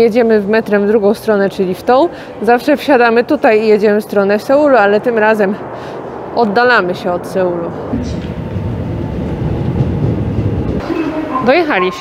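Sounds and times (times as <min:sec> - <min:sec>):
metro train low rumble: 0:07.4 - 0:12.0.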